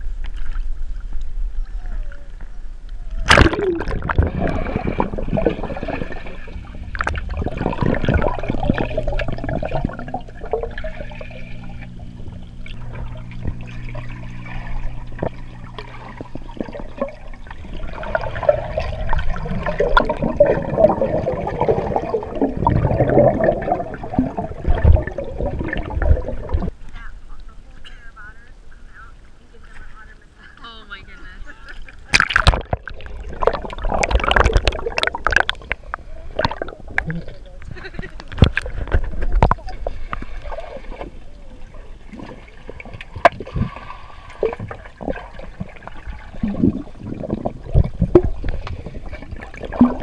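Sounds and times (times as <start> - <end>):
underwater water rushing: 0.0 - 27.6, 31.8 - 50.0
steady low hum: 0.0 - 50.0.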